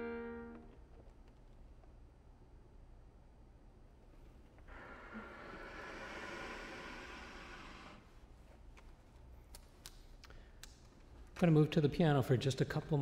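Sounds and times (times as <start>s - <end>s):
accordion bellows airy hiss: 4.7s - 8.0s.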